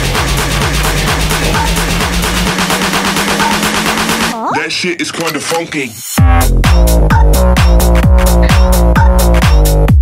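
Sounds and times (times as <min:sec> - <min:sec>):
deep bass: 0:00.0 - 0:04.4, 0:06.2 - 0:10.0.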